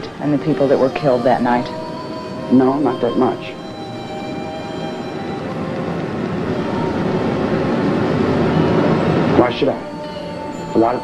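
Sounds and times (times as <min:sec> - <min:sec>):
dark soundtrack drone: 0:00.0 - 0:11.0.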